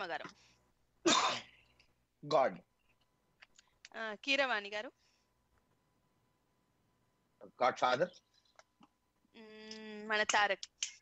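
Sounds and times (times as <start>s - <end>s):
person coughing: 1.0s - 1.6s.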